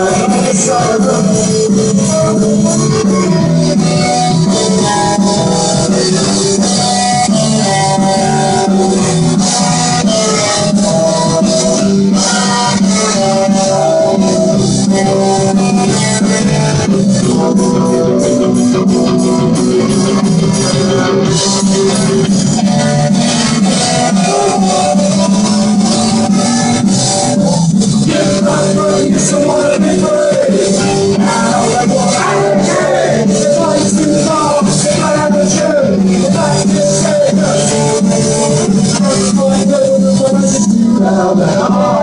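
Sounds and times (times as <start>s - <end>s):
bass guitar: 0.0s - 42.0s
distorted electric guitars: 0.0s - 42.0s
drum kit: 0.0s - 42.0s.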